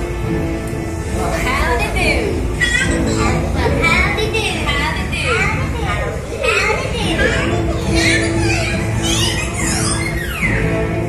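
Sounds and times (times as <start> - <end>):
background music: 0.0 - 11.0
lively voices with children: 1.2 - 11.0.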